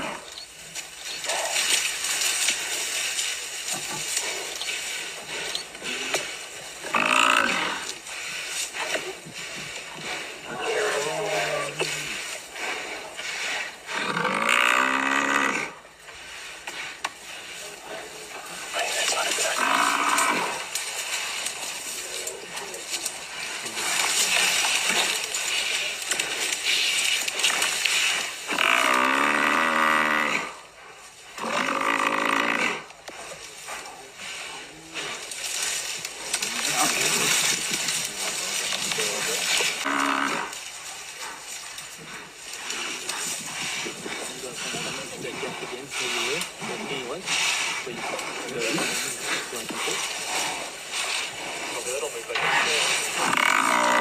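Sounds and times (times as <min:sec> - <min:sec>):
buffalo bellowing in distress: 0:52.4 - 0:54.0.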